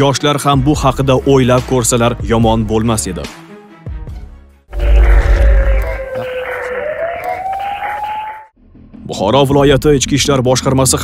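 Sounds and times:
rising synthesized tone: 4.7 - 8.5.

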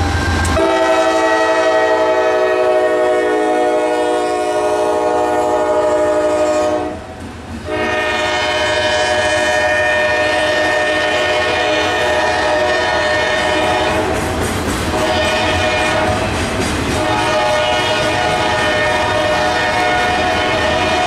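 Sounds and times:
locomotive air horn chord: 0.4 - 14.2, 14.9 - 16.3, 17.0 - 21.0.

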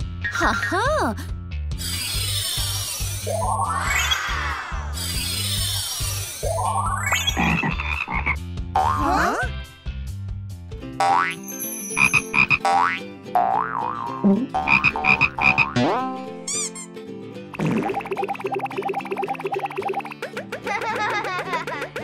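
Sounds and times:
bouncy background music: 0.0 - 22.0
shimmering swooping cartoon effects: 3.0 - 7.3
frog croaking: 7.2 - 9.3, 14.5 - 15.8.

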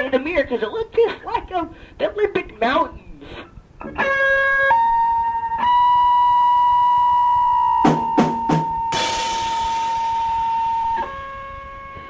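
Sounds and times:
drum hits: 7.8 - 11.2.

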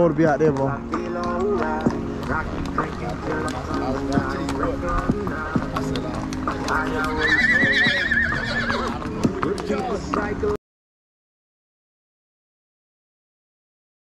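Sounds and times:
hooves clopping on pavement: 0.0 - 10.6
music: 0.0 - 10.6
voices: 0.0 - 10.6
horse whinnying: 3.5 - 10.0.

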